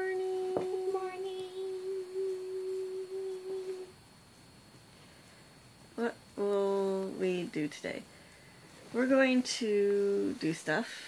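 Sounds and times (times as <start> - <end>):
person humming: 0.0 - 4.0.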